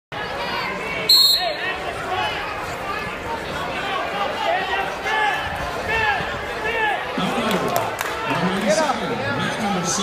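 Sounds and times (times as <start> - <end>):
crowd voices echoing: 0.2 - 10.0
referee's whistle blast: 1.1 - 1.6.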